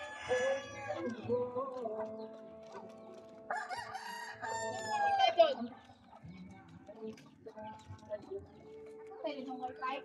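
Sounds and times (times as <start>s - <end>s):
rooster crowing: 0.0s - 1.1s, 3.5s - 5.2s
chicken sounds: 0.0s - 10.0s.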